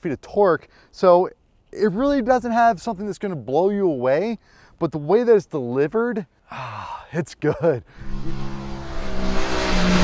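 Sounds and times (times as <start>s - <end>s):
motorcycle engine running: 8.0s - 10.0s.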